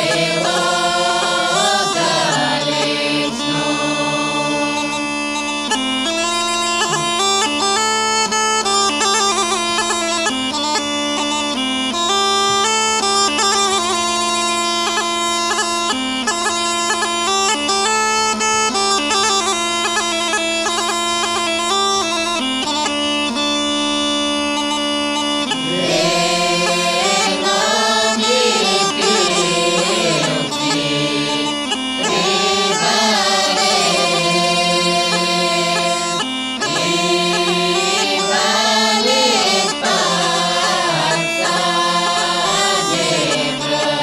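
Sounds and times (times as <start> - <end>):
group of voices singing: 0.0 - 5.0, 25.6 - 44.0
bagpipe melody over drone: 0.0 - 44.0.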